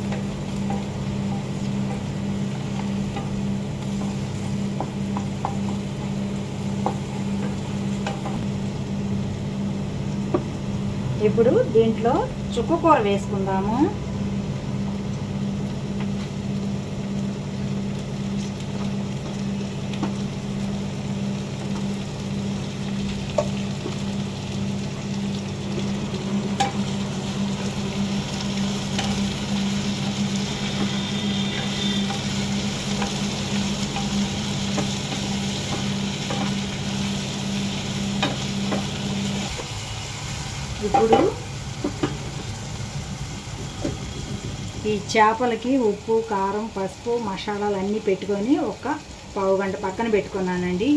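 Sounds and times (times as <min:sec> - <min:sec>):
leaves and onions sizzling in a pan: 0:00.0 - 0:50.9
low steady hum: 0:00.0 - 0:50.9.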